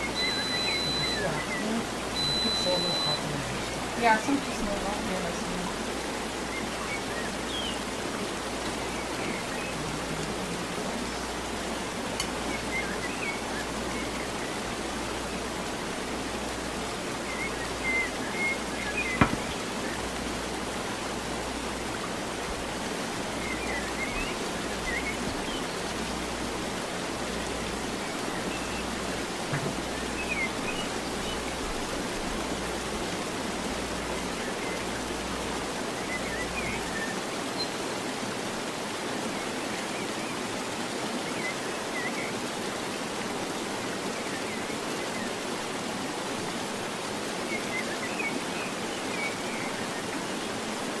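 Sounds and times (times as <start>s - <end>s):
steady background hiss: 0.0s - 51.0s.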